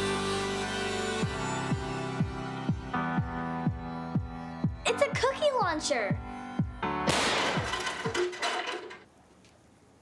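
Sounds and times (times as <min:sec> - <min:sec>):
music: 0:00.0 - 0:08.4
sparking crackling blast: 0:07.1 - 0:07.8.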